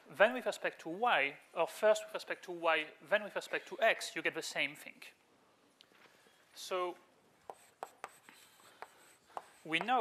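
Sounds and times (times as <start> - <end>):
chalk tapping and scratching: 7.4 - 10.0.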